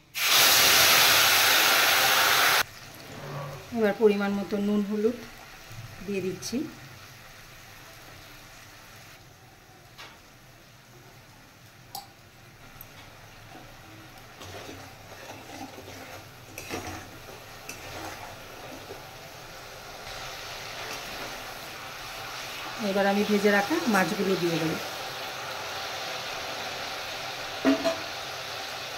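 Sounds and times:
spices sizzling in oil: 0.0s - 28.9s
spoon scraping a pan: 14.4s - 19.1s.

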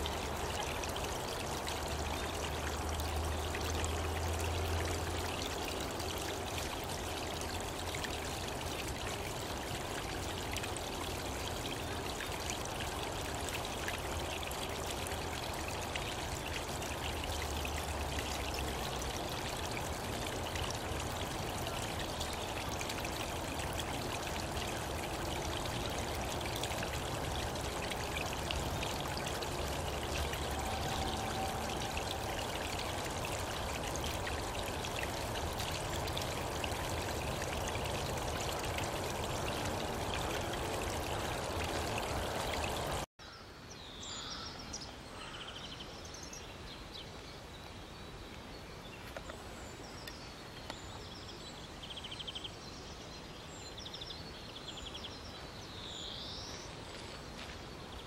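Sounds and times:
brook babbling: 0.0s - 58.0s.

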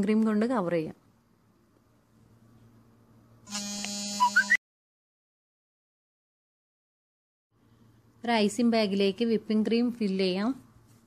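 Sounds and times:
buzzy electronic sound effect: 3.5s - 4.6s
quick rising blips: 4.2s - 4.6s.

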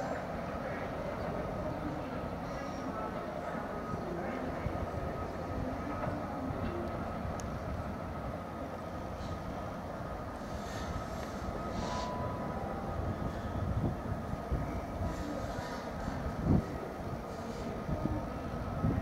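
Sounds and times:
diesel locomotive rumbling: 0.0s - 19.0s.

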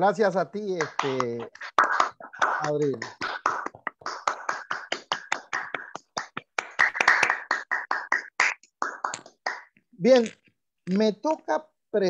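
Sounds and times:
hands clapping in applause: 0.6s - 9.8s.

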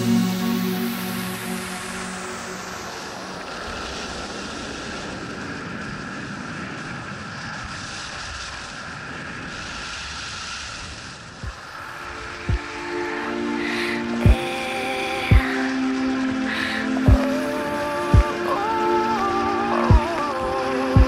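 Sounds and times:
skis sliding on snow: 2.8s - 20.9s
wind on microphone: 14.0s - 21.0s.

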